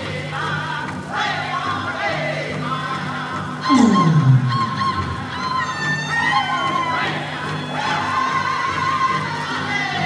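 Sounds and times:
group singing: 0.0s - 10.0s
voice sliding down in pitch: 3.7s - 5.3s
high wavering cry: 3.7s - 6.6s.

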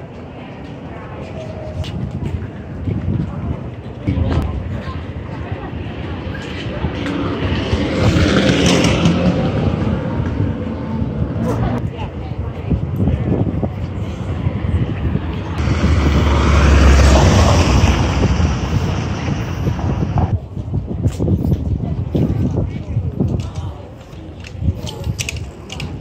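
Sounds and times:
chatter of passers-by: 0.0s - 26.0s
traffic noise: 0.0s - 26.0s
vehicle low rumble: 0.0s - 26.0s.

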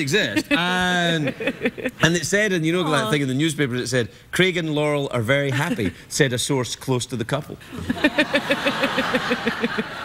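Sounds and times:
studio audience laughing: 0.3s - 2.1s, 7.7s - 10.0s.

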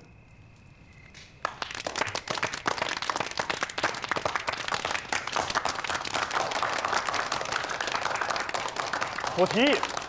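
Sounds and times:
people clapping: 1.4s - 10.0s.

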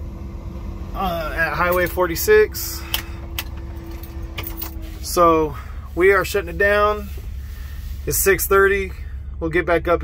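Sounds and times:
diesel engine idling: 0.0s - 10.0s
faint steady hum: 0.0s - 10.0s.

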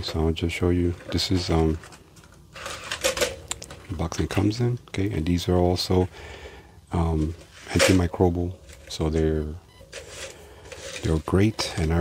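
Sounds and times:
packaging scraping and rustling: 0.0s - 4.0s, 7.1s - 12.0s.

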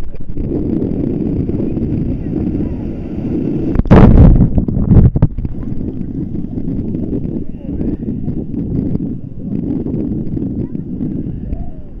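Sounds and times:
wind noise on microphone: 0.0s - 12.0s.

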